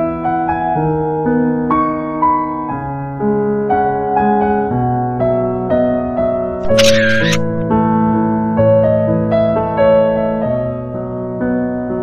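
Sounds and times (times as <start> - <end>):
camera shutter click: 6.6 - 7.6.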